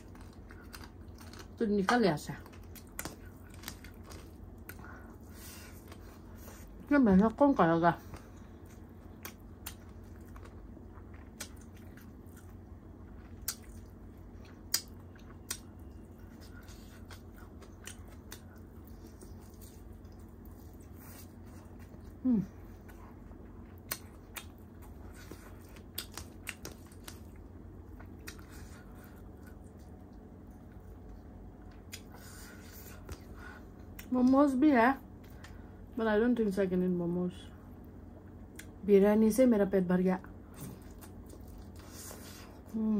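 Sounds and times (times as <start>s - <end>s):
chewing and wet mouth clicks: 2.4s - 4.8s, 8.6s - 20.8s, 23.7s - 28.5s, 38.5s - 38.8s, 40.6s - 42.1s.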